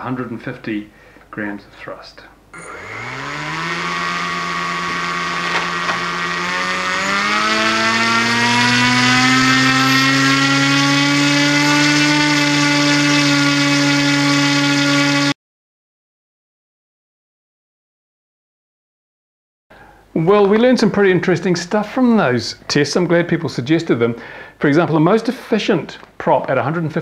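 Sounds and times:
small electric motor spinning propeller: 2.6 - 15.4.

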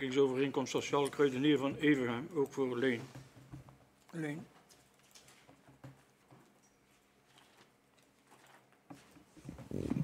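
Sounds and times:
soft knock: 3.0 - 3.9.

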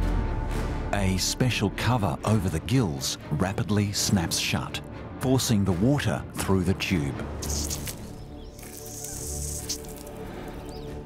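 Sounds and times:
background music with held tones: 0.0 - 11.0
hissing water jet spray: 8.6 - 10.4.

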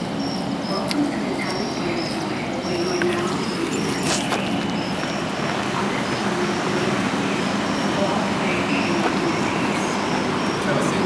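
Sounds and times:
steady background roar: 0.0 - 11.0.

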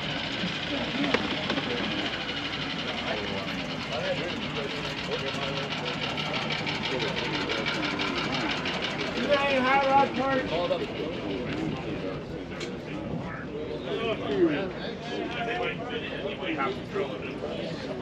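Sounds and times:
engine running steadily: 0.0 - 18.0
people talking: 0.0 - 18.0.

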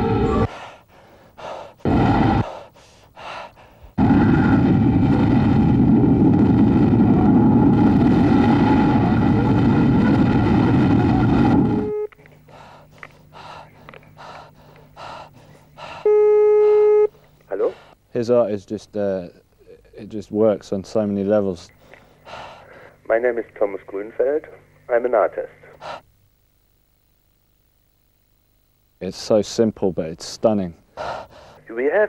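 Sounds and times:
low hum: 0.0 - 18.0.

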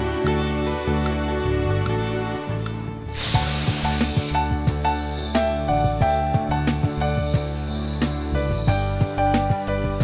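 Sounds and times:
background music: 0.0 - 10.0
food sizzling in hot oil: 3.1 - 10.0.

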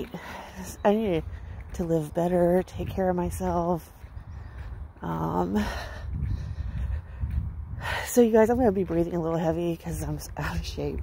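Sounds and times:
woman breathing heavily: 0.0 - 1.8, 4.0 - 8.4
low rumble on microphone: 5.6 - 9.0.

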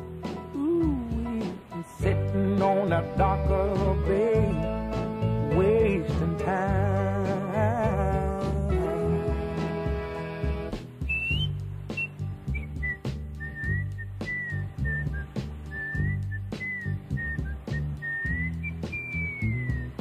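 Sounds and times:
bass and drums: 0.0 - 20.0
man whistling a melody: 11.0 - 20.0.

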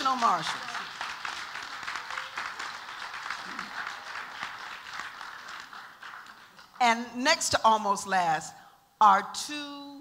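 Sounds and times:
people clapping: 0.0 - 7.1.

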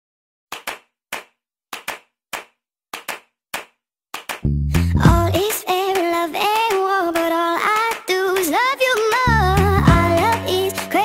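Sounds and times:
handclaps: 0.5 - 4.5, 5.1 - 10.5.

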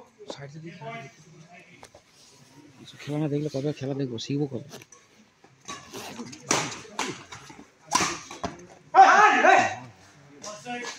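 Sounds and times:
racket hitting shuttlecock: 6.5 - 8.5.

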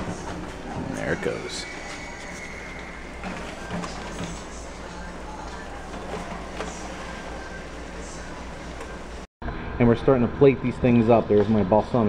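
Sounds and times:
foil pans sliding on wire racks: 0.0 - 9.1.

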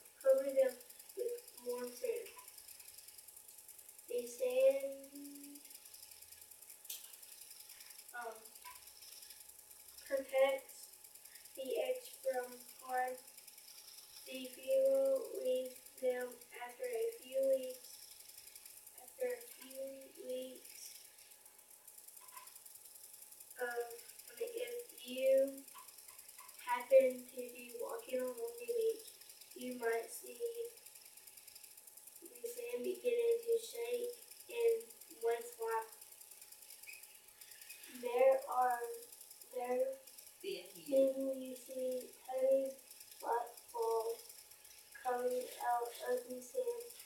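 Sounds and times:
child reading aloud: 0.0 - 2.4, 4.1 - 5.6, 8.2 - 8.5, 10.1 - 10.8, 11.6 - 13.3, 14.3 - 18.0, 19.0 - 21.0, 23.6 - 25.7, 26.6 - 30.7, 32.2 - 35.9, 37.9 - 44.2, 45.0 - 47.0.

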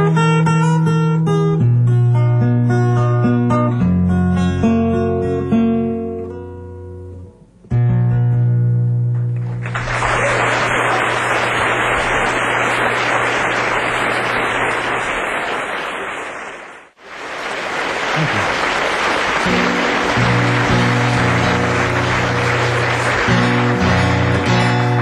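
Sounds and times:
acoustic guitar picking: 0.0 - 9.6, 19.4 - 25.0
audience applauding: 9.4 - 25.0.

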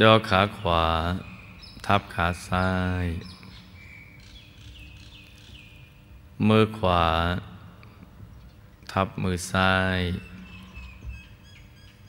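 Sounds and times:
man speaking: 0.0 - 3.3, 6.4 - 7.7, 8.9 - 10.4
faint bird chirps: 0.2 - 6.1, 10.1 - 12.0.

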